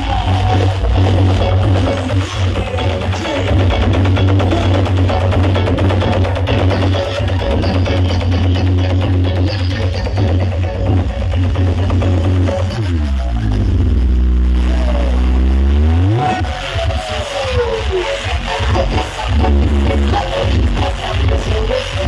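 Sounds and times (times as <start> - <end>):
electronic dance music with heavy bass: 0.0 - 22.0.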